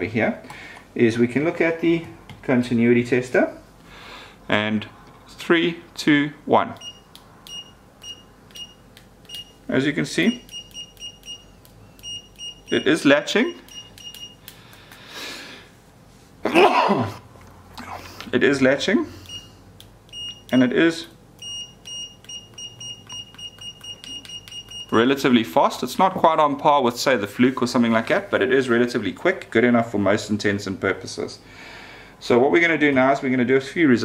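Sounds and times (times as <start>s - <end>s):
test probe tips clicking: 6.8s - 9.6s, 10.3s - 12.9s, 13.6s - 15.0s, 19.2s - 25.0s
multimeter continuity beeps: 6.8s - 14.5s, 19.2s - 25.1s.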